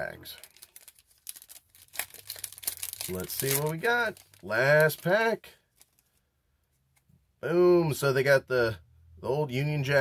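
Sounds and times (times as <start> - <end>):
foil wrapper tearing and crinkling: 0.4 - 6.0.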